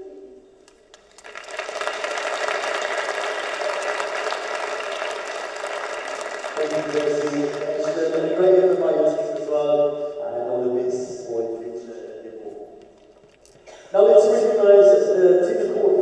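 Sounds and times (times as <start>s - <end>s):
audience applauding: 0.7s - 9.4s
man talking: 6.6s - 12.8s, 13.9s - 16.0s.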